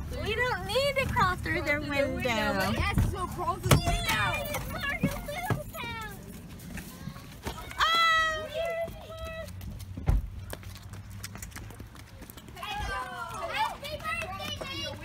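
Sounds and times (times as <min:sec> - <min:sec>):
footsteps on concrete steps: 0:02.7 - 0:15.0.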